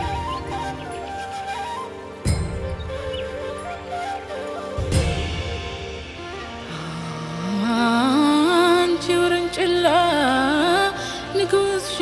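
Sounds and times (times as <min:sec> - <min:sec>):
backing music: 0:00.0 - 0:12.0
woman singing: 0:06.7 - 0:12.0.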